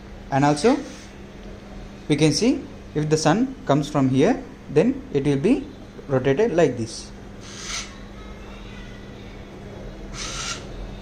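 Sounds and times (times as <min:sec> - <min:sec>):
small electric motor humming: 0:10.2 - 0:10.7.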